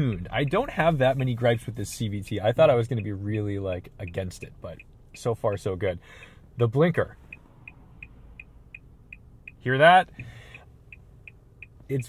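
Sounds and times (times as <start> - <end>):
turn signal ticking: 0.0 - 12.0.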